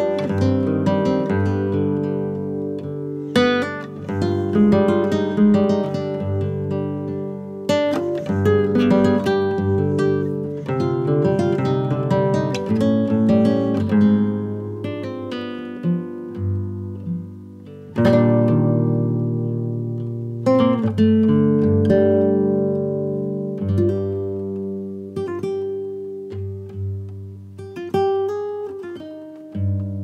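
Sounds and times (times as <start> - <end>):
acoustic guitar music: 0.0 - 30.0.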